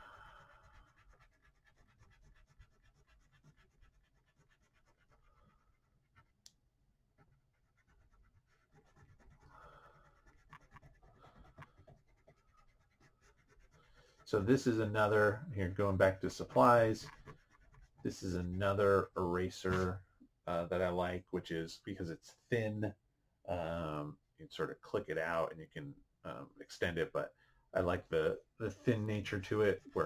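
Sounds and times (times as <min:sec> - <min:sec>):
drawing tool scratching paper: 0:00.1 - 0:06.4, 0:07.2 - 0:19.0.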